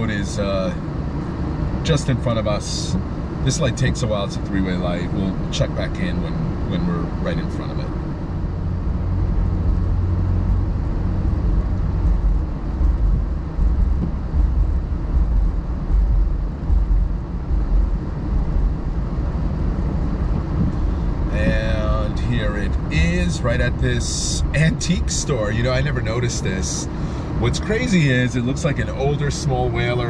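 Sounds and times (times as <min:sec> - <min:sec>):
man talking: 0:00.0 - 0:00.8, 0:01.8 - 0:07.9, 0:21.3 - 0:30.0
car engine and road rumble: 0:00.0 - 0:30.0.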